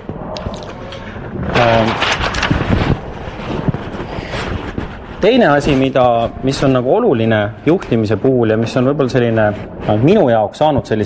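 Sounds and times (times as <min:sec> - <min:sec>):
wind blowing on microphone: 0:00.0 - 0:08.0.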